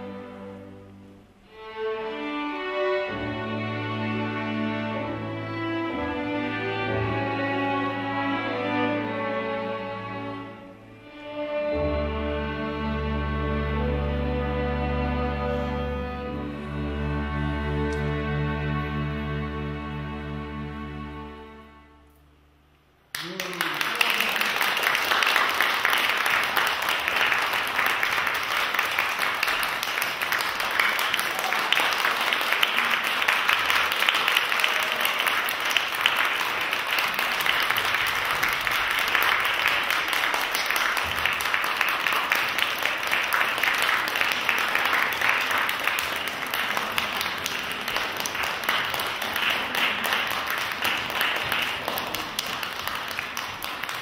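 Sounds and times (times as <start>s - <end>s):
audience applauding: 23.1s - 54.0s.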